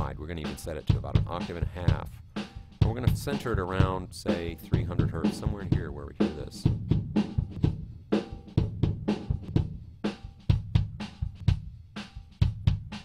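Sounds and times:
kick drum beat: 0.0s - 13.0s.

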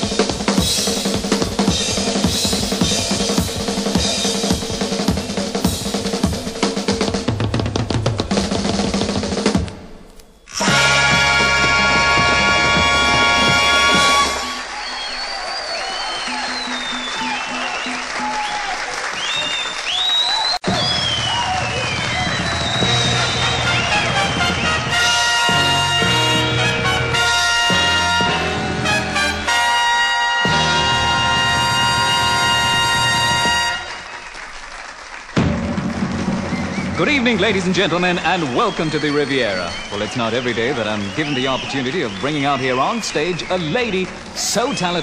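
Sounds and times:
drum roll: 0.0s - 9.9s, 10.6s - 15.0s, 20.6s - 34.3s, 35.2s - 45.0s
orchestra brass fanfare: 10.5s - 14.7s, 22.8s - 34.3s
audience applauding: 10.7s - 45.0s
whistles from audience: 13.8s - 26.0s, 32.5s - 34.7s, 36.2s - 45.0s.

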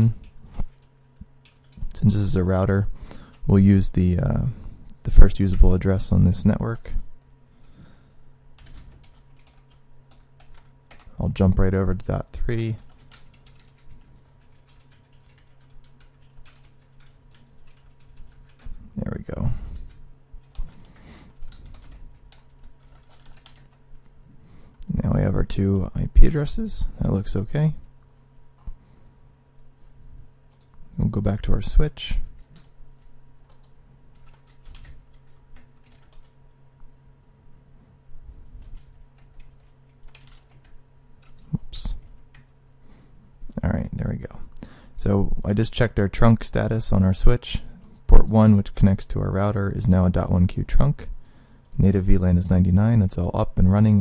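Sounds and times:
low steady hum: 0.0s - 54.0s
computer keyboard typing: 0.2s - 2.0s, 8.6s - 11.2s, 12.7s - 18.8s, 19.8s - 24.1s, 32.4s - 36.4s, 38.6s - 42.5s.

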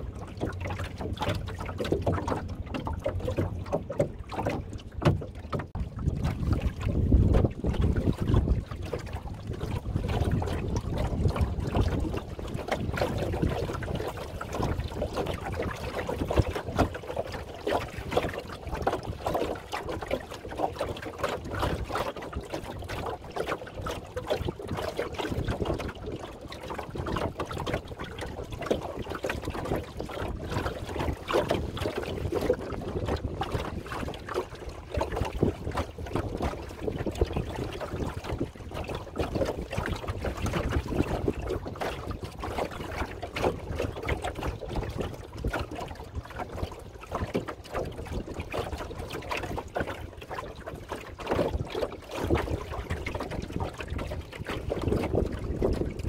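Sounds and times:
small splashes: 0.0s - 56.0s
water lapping along boat hull: 0.0s - 56.0s
wind rumble on microphone: 0.0s - 56.0s.

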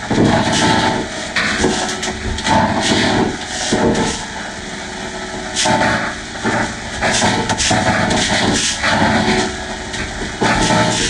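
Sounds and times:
heavily distorted karaoke song: 0.0s - 11.0s.

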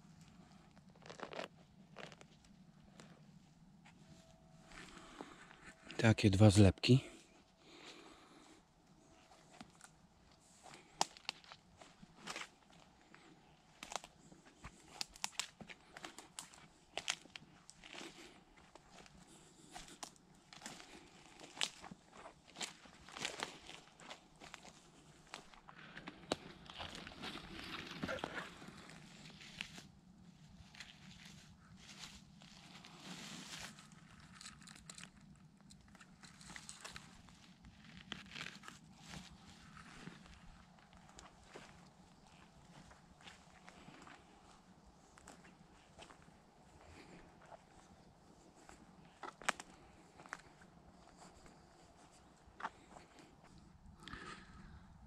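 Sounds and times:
rustling vegetation: 7.7s - 53.3s
footsteps through grass and leaves: 10.4s - 34.8s, 36.2s - 53.3s
twigs crackling: 10.6s - 12.8s, 13.7s - 19.1s, 19.7s - 29.9s, 30.6s - 44.2s.

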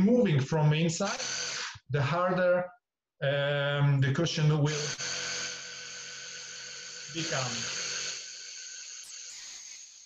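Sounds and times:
vacuum pump running: 4.7s - 9.4s.

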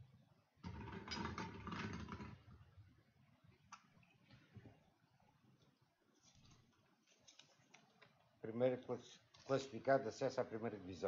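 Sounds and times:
plastic balls rattling in glass bowl: 0.6s - 2.5s.

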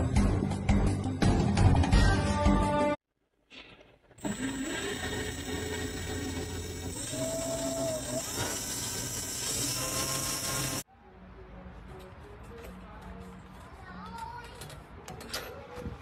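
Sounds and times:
small power tool whining: 4.2s - 10.8s.

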